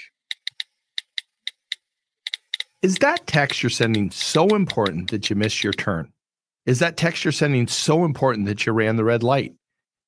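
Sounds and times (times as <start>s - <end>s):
smartphone keyboard clicks: 0.2s - 5.9s.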